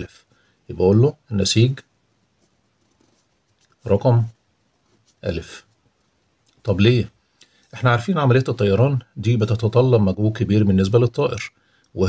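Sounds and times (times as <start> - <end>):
man talking: 0.0 - 1.9, 3.8 - 4.4, 5.2 - 5.7, 6.5 - 12.0
pen scratching on paper: 2.3 - 5.8.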